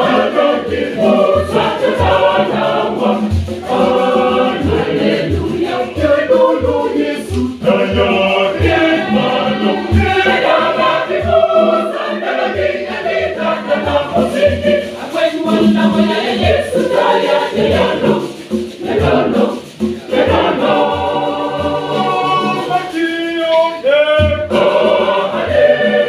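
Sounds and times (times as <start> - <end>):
conga drums beating: 0.0 - 26.0
mixed choir singing: 0.0 - 26.0.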